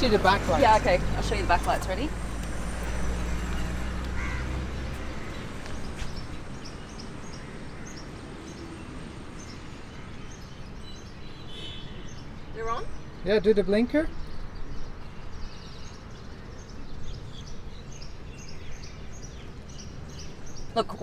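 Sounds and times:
small birds chirping: 0.0 - 21.0.

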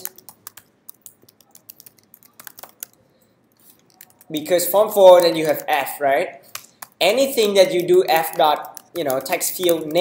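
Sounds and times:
computer keyboard key clicks: 0.0 - 3.0, 8.2 - 10.0.

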